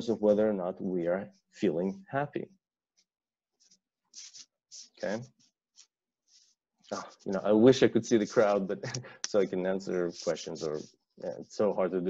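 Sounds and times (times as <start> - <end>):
faint hissing rustles: 6.3 - 11.9.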